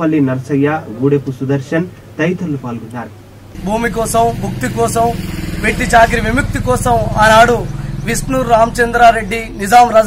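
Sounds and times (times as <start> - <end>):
man speaking: 0.0 - 10.0
low engine drone: 3.5 - 9.9.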